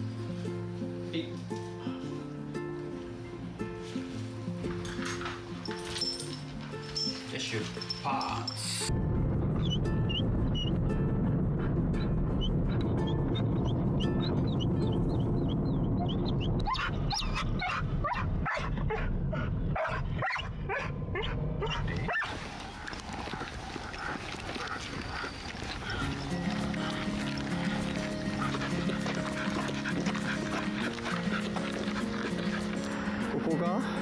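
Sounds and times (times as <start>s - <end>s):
background music: 0.0s - 18.2s, 25.1s - 34.0s
car rumble: 8.9s - 31.0s
dog whining: 16.0s - 22.3s
dog yipping and barking: 16.0s - 22.4s.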